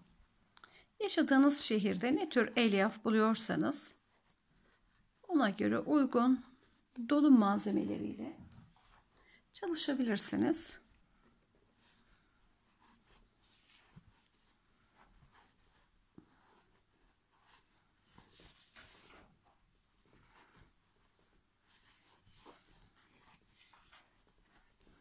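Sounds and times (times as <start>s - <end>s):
rustling and scratching of stuffing: 0.0s - 25.0s.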